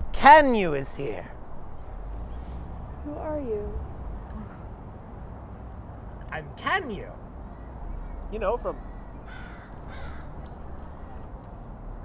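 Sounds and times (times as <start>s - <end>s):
crow cawing: 8.8s - 11.3s.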